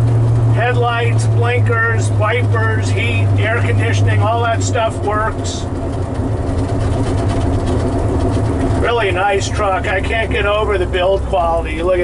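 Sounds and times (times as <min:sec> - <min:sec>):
engine and road drone: 0:00.0 - 0:12.0
man talking: 0:00.5 - 0:05.7, 0:08.8 - 0:12.0.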